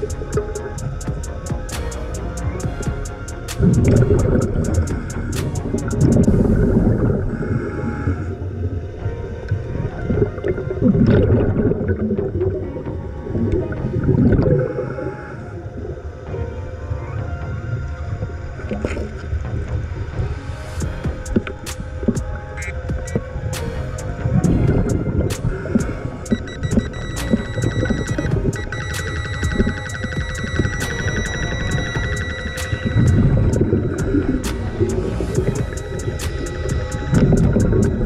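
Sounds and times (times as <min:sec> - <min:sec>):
rapidly pulsing electronic tone: 0:00.0 - 0:08.6, 0:20.8 - 0:38.0
underwater air bubbling: 0:00.0 - 0:16.3, 0:17.4 - 0:38.0
low rumble: 0:17.4 - 0:38.0
sharp clicks: 0:25.3 - 0:38.0.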